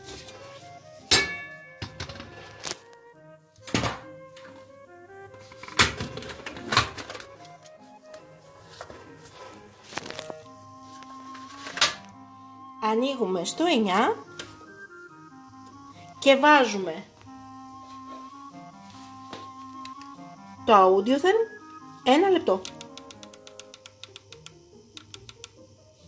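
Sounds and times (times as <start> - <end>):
background music: 0.0 - 26.0.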